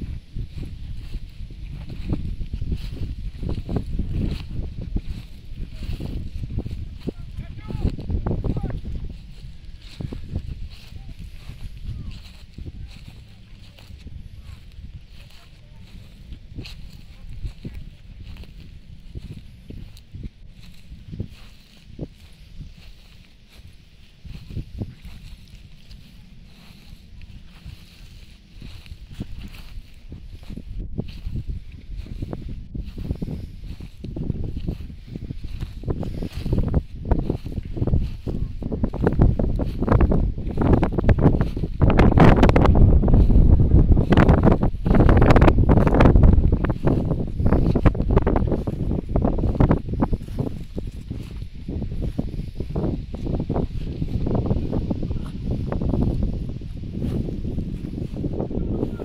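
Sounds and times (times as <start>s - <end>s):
rustling and knocking through grass: 0.0s - 58.9s
wind buffeting microphone: 0.0s - 59.0s.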